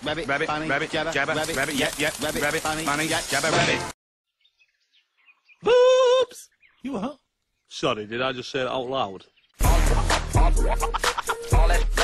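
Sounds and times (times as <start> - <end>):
held vocal call: 5.5 - 7.2.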